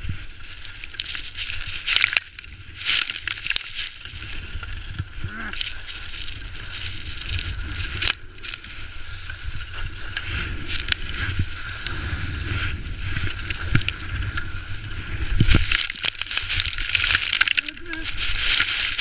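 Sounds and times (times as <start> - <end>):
snow spraying and scraping: 0.0 - 19.0
wind rumbling on microphone: 0.0 - 19.0.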